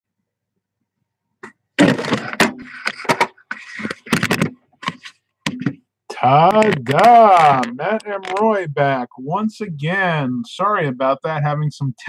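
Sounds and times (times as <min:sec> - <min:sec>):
sharp clicks and knocks: 0:01.8 - 0:08.6.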